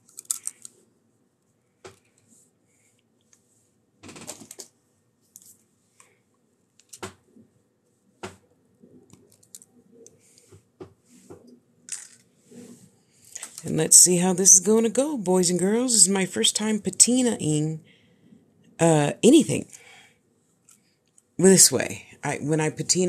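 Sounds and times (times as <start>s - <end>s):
small items handled on a table: 0.0s - 0.8s, 8.2s - 13.7s.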